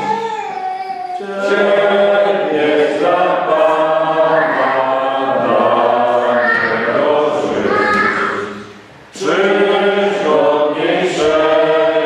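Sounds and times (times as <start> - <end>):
choir singing held notes: 1.2 - 12.0.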